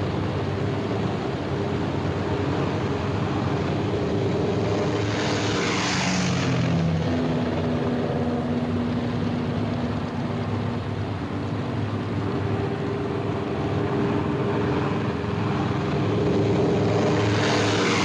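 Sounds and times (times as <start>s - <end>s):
radial engines propeller drone: 0.0s - 18.0s.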